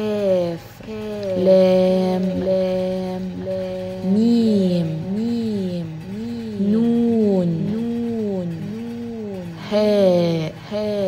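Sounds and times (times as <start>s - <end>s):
voice-changed person singing: 1.0s - 11.0s.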